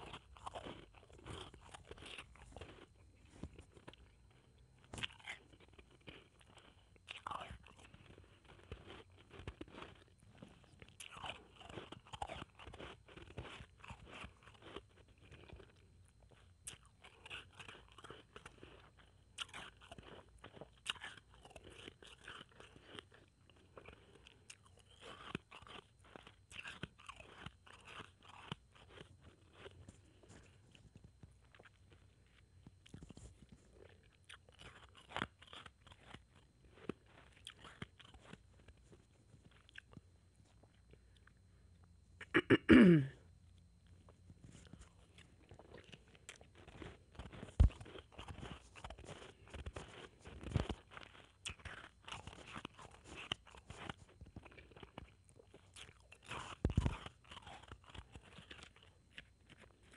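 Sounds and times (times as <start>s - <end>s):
ice being crunched and chewed: 0.0s - 42.4s, 43.5s - 59.9s.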